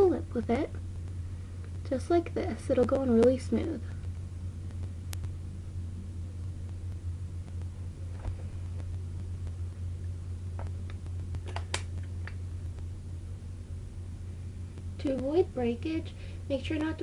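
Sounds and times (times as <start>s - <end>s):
low room tone hum: 0.0s - 17.0s.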